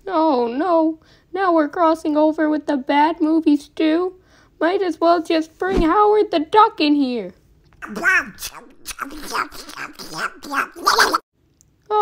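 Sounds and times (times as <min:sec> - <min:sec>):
squawky cartoon duck voice: 0:07.8 - 0:11.2.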